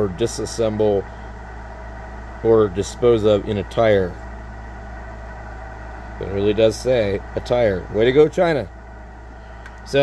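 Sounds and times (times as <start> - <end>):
steady low hum with hiss: 0.0 - 10.0.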